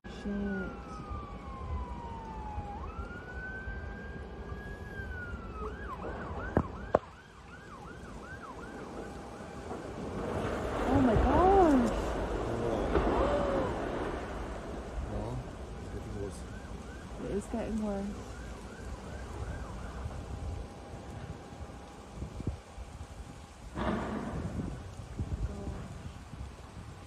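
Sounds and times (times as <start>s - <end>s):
voices: 0.0s - 1.2s, 10.8s - 14.3s, 15.0s - 16.5s, 17.1s - 18.2s, 25.4s - 26.0s
emergency vehicle siren: 0.0s - 25.0s
sharp cracks: 8.0s - 20.0s, 23.7s - 25.9s.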